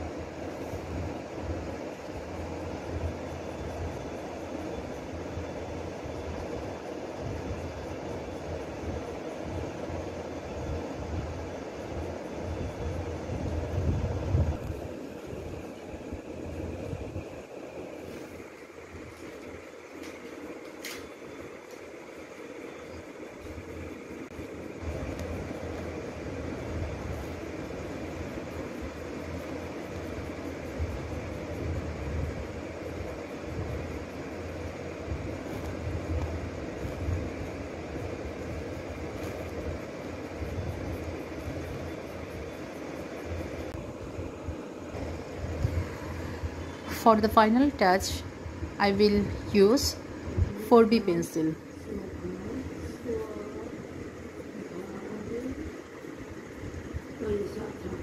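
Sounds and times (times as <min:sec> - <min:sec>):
steady low rumble: 0:00.0 - 0:58.0.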